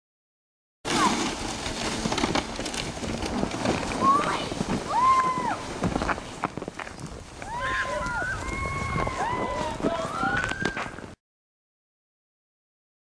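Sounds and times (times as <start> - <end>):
children shouting: 4.0 - 5.6, 7.4 - 10.8.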